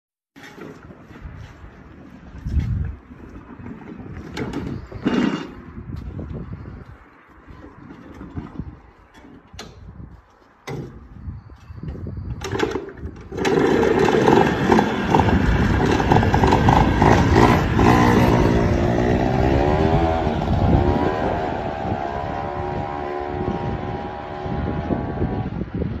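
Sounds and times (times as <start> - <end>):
small engine starting and revving: 12.4 - 25.6.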